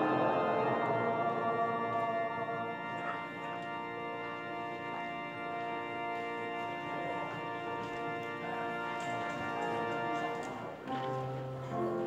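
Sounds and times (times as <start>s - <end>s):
organ playing sustained chords: 0.0s - 12.0s.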